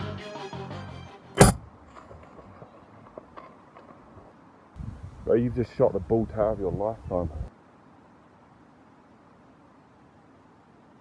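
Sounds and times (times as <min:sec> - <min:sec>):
rifle shot: 0:01.4 - 0:01.7.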